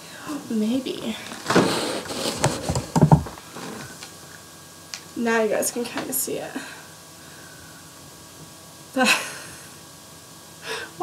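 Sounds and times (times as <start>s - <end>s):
soft knocks: 2.4s - 3.4s.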